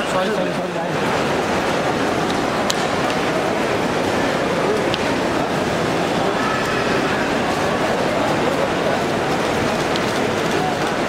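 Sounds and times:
crowd hubbub: 0.0s - 11.0s.

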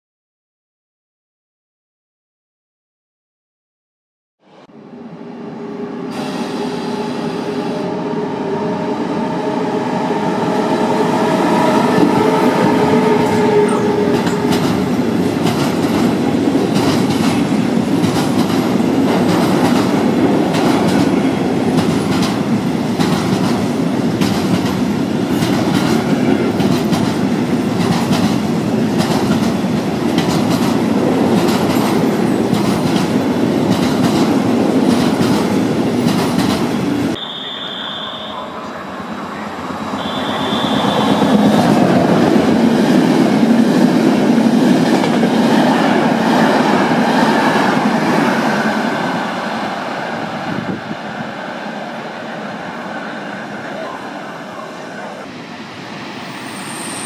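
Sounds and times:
passenger train passing: 4.4s - 57.0s
freight train rumbling past: 4.5s - 57.0s
short high tones: 40.0s - 41.6s.

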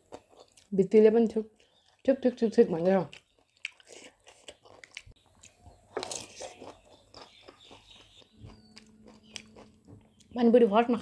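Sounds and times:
person chewing food: 0.0s - 0.7s, 1.5s - 2.0s, 3.1s - 10.4s.

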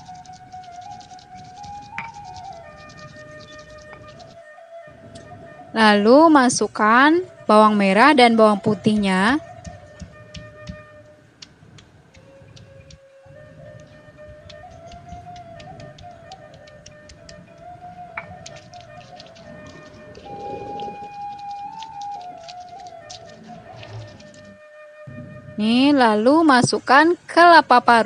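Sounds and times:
flute-like background music: 0.0s - 28.0s
stone pestle crushing on stone: 14.2s - 17.4s.

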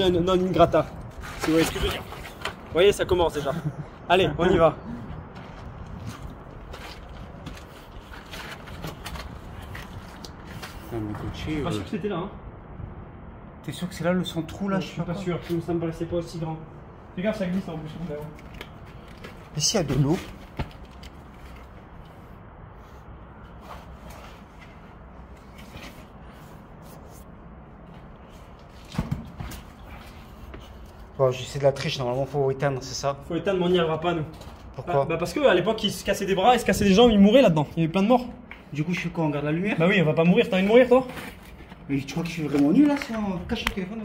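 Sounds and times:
steady low rumble: 2.9s - 19.7s
shoes scraping on rock: 5.4s - 10.9s.

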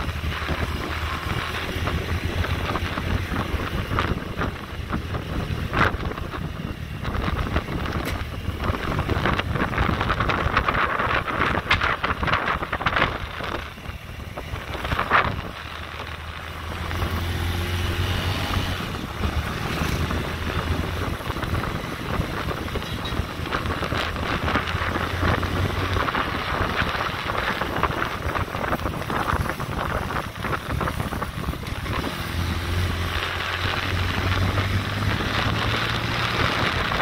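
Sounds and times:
motorbike engine hum: 0.0s - 37.0s
wind buffeting microphone: 0.0s - 37.0s.

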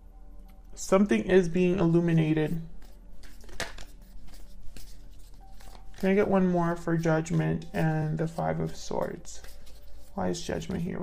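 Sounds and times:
cards shuffling: 2.5s - 11.0s.

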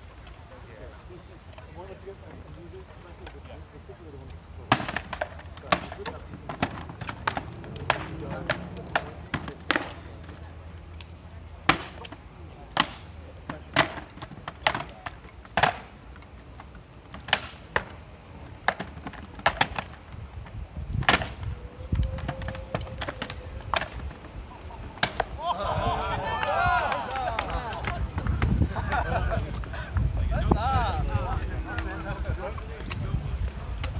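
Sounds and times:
wind rumbling on microphone: 20.0s - 33.9s.

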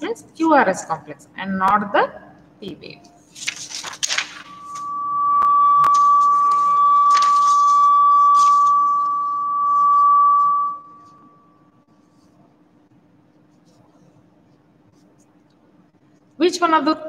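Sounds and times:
paper rustling: 3.2s - 4.8s, 5.9s - 9.0s
high-pitched electronic tone: 4.3s - 11.7s.

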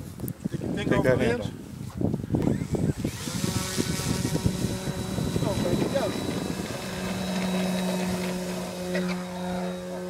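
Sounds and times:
model airplane motor whine: 2.4s - 10.0s.

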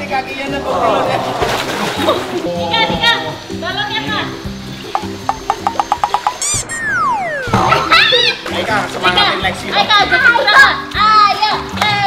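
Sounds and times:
background music: 0.0s - 12.0s
falling whistle tone: 6.4s - 8.2s.

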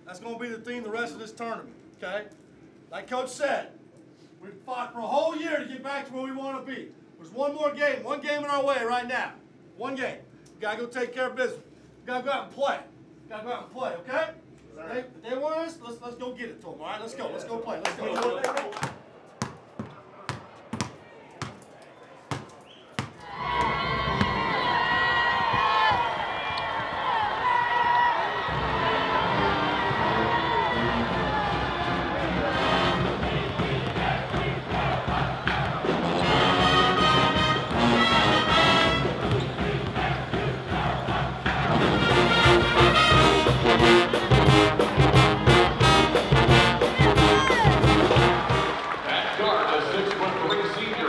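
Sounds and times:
arena crowd noise: 16.9s - 51.0s
basketball bouncing: 18.8s - 21.7s, 22.3s - 26.2s, 33.2s - 35.9s, 39.0s - 40.8s
brass pep band with drums: 28.4s - 49.0s.

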